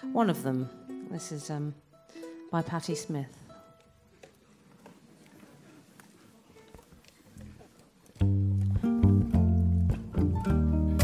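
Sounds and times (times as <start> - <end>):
ukulele ensemble strumming: 0.0 - 4.9, 6.5 - 11.0.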